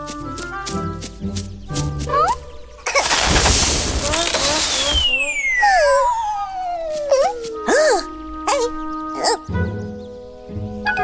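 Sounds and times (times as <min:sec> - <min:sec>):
squeaky voice sounds: 0:02.1 - 0:03.0, 0:04.1 - 0:09.4
hissing fire whoosh: 0:03.0 - 0:05.4
falling whistle: 0:04.7 - 0:06.6.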